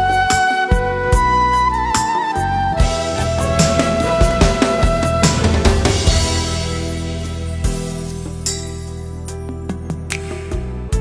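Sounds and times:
instrumental karaoke backing track: 0.0 - 11.0.

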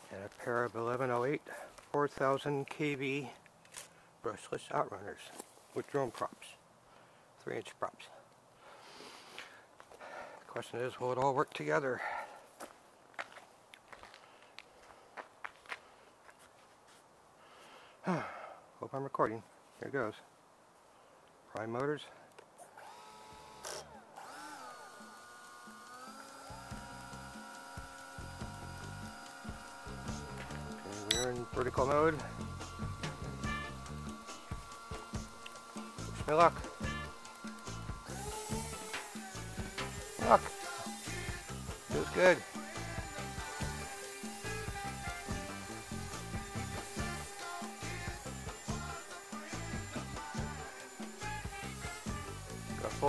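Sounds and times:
footsteps on gravel: 0.0 - 2.3, 12.3 - 17.0
electric motors whining: 22.7 - 53.0
music with steady beat: 29.6 - 53.0.

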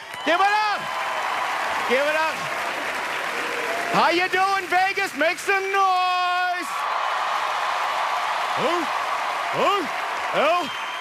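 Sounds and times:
crowd cheering and applauding: 0.0 - 11.0.

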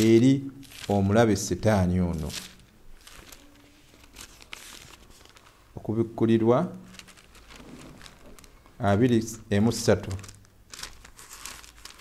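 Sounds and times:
thin book pages rustling: 0.0 - 1.1, 2.1 - 5.7, 6.8 - 8.8, 10.1 - 12.0.

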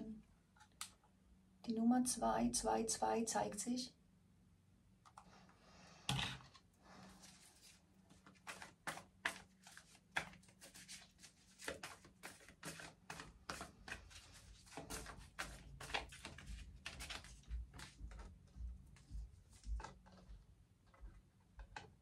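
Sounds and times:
cards being shuffled: 7.2 - 18.4.

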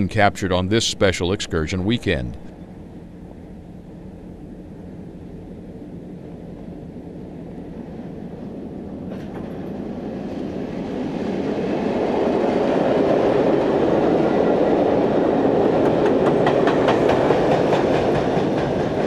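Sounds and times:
passenger train rumbling: 0.0 - 19.0
train wheels clicking over rail joints: 9.0 - 10.0, 15.6 - 19.0.

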